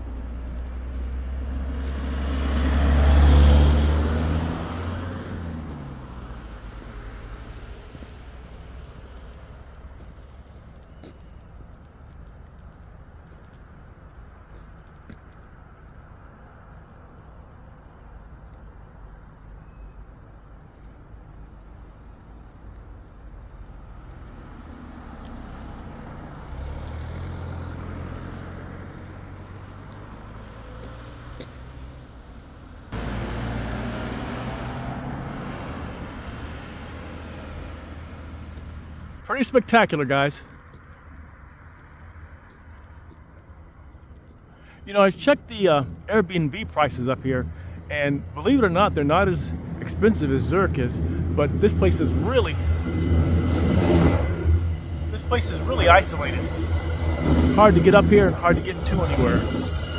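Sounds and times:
vehicle engine hum: 0:00.0 - 0:19.6, 0:20.2 - 0:59.9
engine and road noise: 0:00.0 - 0:59.9
steady low rumble: 0:45.1 - 0:59.9.

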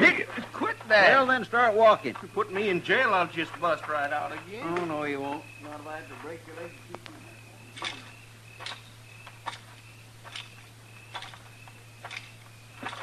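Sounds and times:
boots walking: 0:00.0 - 0:07.1
low steady hum: 0:00.0 - 0:13.0.

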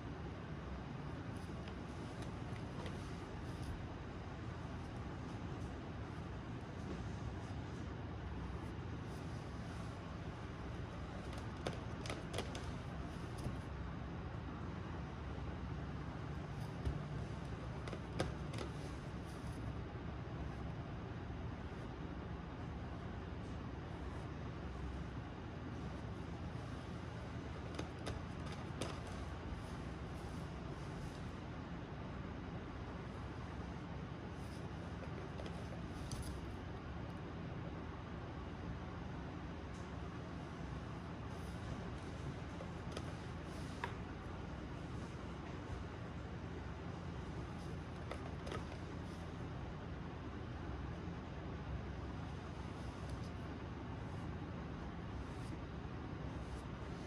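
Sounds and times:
low background noise: 0:00.0 - 0:57.0.

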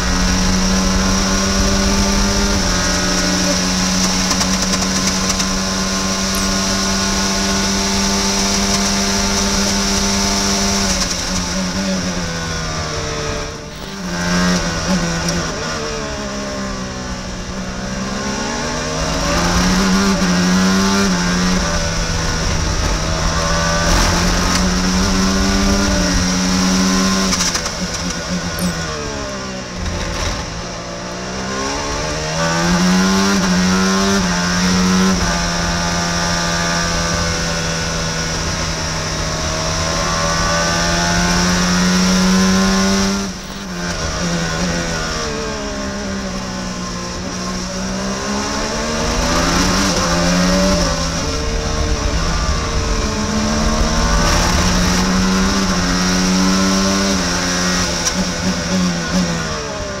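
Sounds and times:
race car engine revving: 0:00.0 - 1:00.0.

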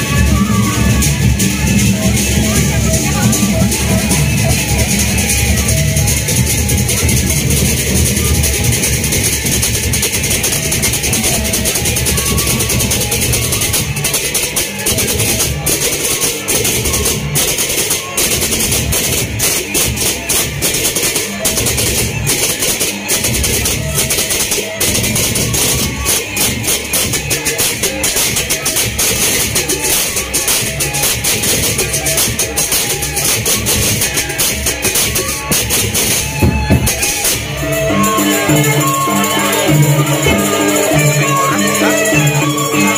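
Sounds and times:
hand cymbals clashing: 0:00.0 - 0:42.9
large drums: 0:00.0 - 0:42.9.

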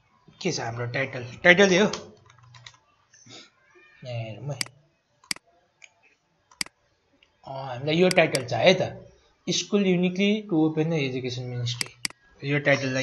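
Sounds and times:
keyboard and mouse clicks: 0:01.9 - 0:02.8, 0:08.1 - 0:08.5, 0:11.8 - 0:12.2.

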